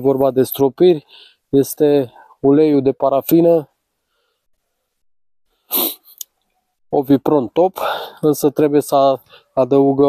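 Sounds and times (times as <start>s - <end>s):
man drawing sharp breath: 1.1s - 1.5s, 4.0s - 4.5s, 5.5s - 6.2s, 9.3s - 9.6s
mouth click: 5.7s - 6.4s.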